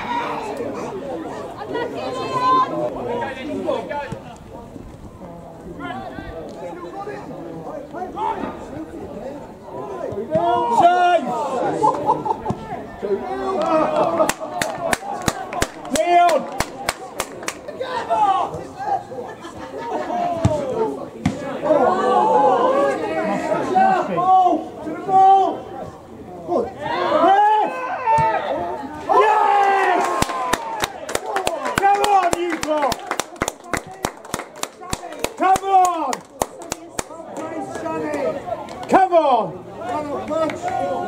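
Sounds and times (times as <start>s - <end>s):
spectators shouting: 9.7s - 19.1s, 19.9s - 25.7s, 26.6s - 34.0s
people cheering: 9.8s - 25.6s, 26.7s - 38.9s, 39.8s - 41.0s
spectators clapping: 13.6s - 17.7s, 29.6s - 38.9s.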